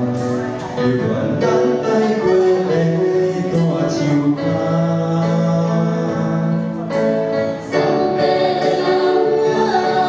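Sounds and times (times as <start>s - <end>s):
amplified duet singing: 0.0s - 10.0s
karaoke backing track with guitar: 0.0s - 10.0s.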